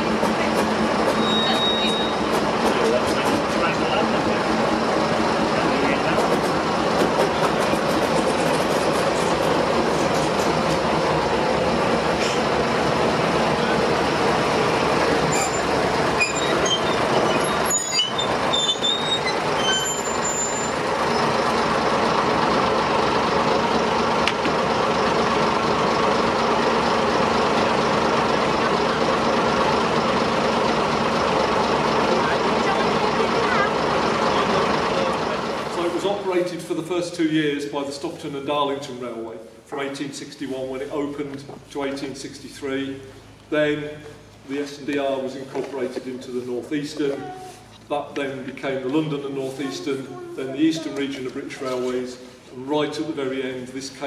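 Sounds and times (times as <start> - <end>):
diesel locomotive engine drone: 0.0 - 36.9
high squeals and clicks: 0.2 - 3.5, 15.2 - 21.5.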